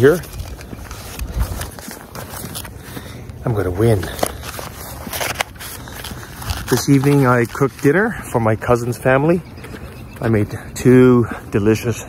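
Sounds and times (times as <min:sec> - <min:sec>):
fabric and paper rustling: 0:00.0 - 0:08.8.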